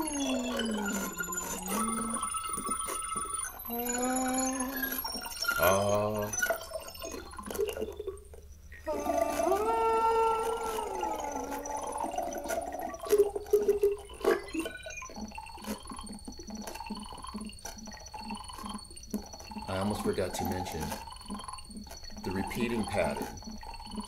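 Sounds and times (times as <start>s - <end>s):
steady high synth tone: 0.0s - 7.6s, 8.8s - 15.9s
soft pulse: 0.0s - 8.0s, 8.7s - 24.0s
synthesizer tone gliding: 0.0s - 8.1s, 8.8s - 24.0s.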